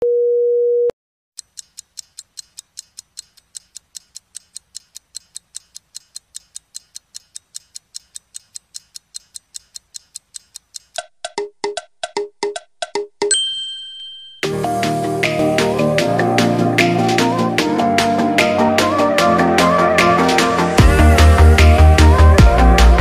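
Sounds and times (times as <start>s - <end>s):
clock ticking: 1.4s - 13.2s
chiming pitched notes: 13.3s - 19.8s.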